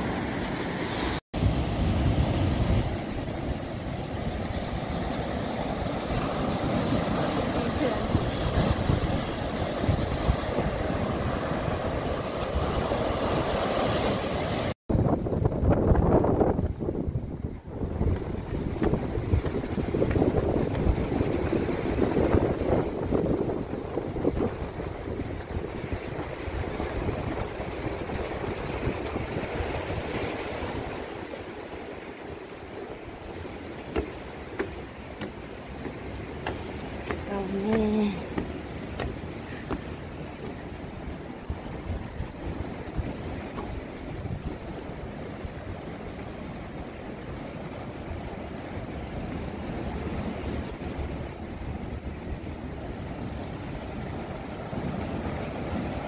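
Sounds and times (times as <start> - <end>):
waves breaking on rocks: 0.0 - 56.0
wind rumbling on microphone: 1.4 - 56.0.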